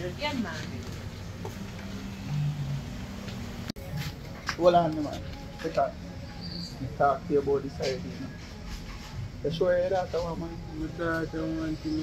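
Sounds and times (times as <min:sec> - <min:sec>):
faint high-pitched chirp: 0:06.2 - 0:07.2.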